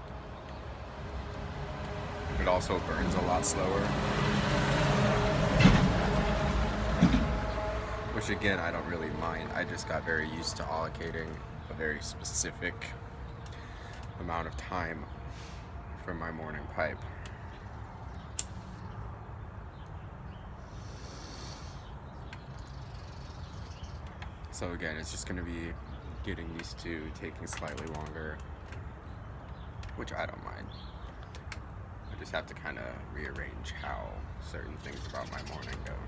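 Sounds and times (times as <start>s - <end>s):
street traffic rumble: 0.0s - 36.0s
breathy hiss of exhaling smoke: 15.3s - 15.7s, 20.6s - 21.9s.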